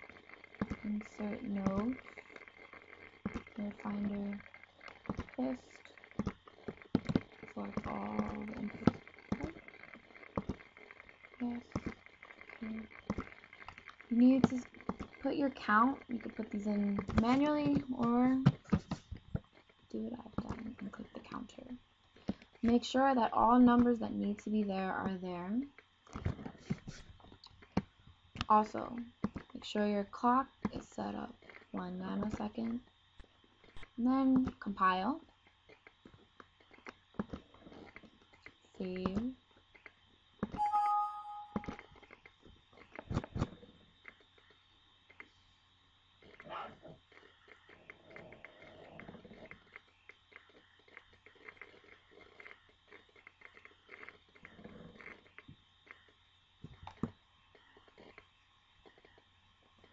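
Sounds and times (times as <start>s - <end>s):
faint low sound: 40.6s - 42.0s.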